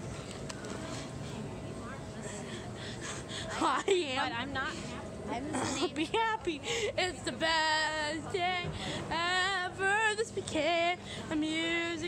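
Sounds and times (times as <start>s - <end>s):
woman singing: 6.0s - 12.0s.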